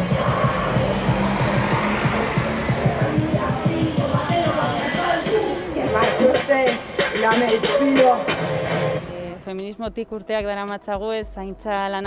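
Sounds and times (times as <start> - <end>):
music with fast low beat: 0.0 - 12.0.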